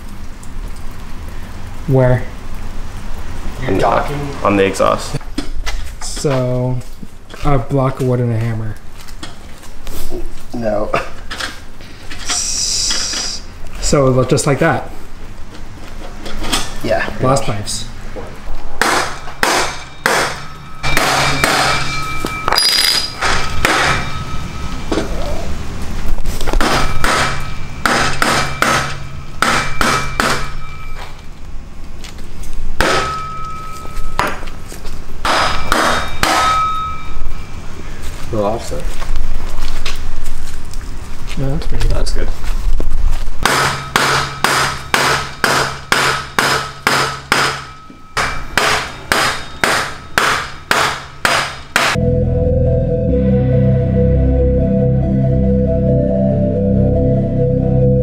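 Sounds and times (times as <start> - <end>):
short metallic ring: 19.7 - 24.9, 26.8 - 31.2, 35.5 - 37.6
hammer knocking wooden block: 43.4 - 52.0.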